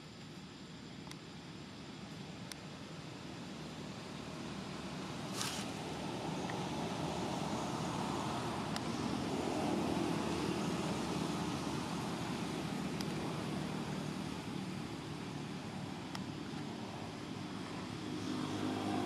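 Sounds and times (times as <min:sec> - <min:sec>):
outdoor background rumble: 0:00.0 - 0:19.0
faint sharp clicks: 0:01.0 - 0:01.2, 0:02.4 - 0:02.7, 0:12.9 - 0:13.2, 0:16.1 - 0:16.7.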